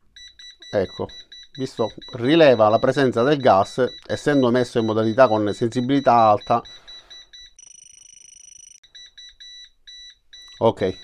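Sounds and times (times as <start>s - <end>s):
gas detector alarm beeping: 0.1s - 11.0s
steady high alarm tone: 0.2s - 11.0s.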